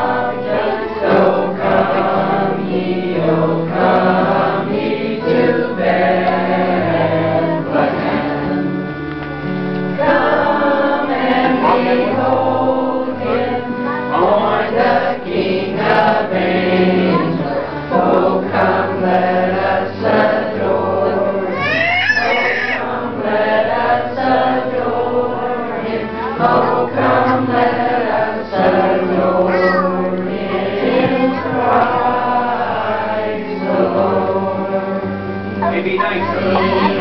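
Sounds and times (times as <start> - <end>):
group singing a carol: 0.0 - 37.0.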